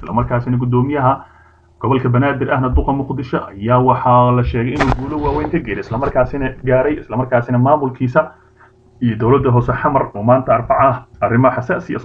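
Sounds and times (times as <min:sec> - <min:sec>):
man narrating: 0:00.0 - 0:08.4, 0:09.0 - 0:12.0
sharp click: 0:04.8 - 0:06.2.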